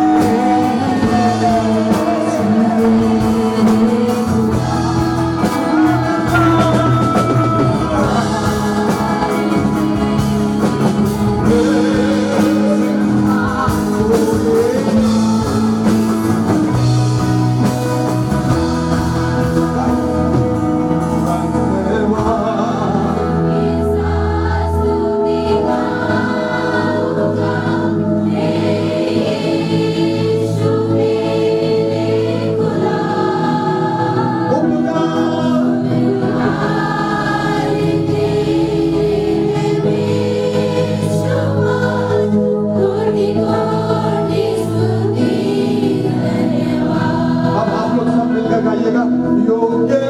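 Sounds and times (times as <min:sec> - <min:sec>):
congregation singing: 0:00.0 - 0:50.0
musical accompaniment: 0:00.0 - 0:50.0.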